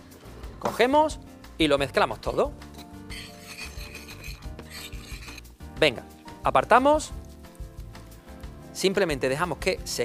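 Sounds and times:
metal spoon scraping sugar in bowl: 2.7 - 5.5.

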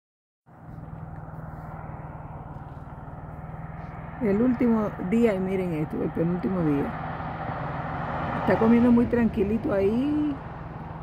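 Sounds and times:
car engine idling: 0.5 - 11.0.

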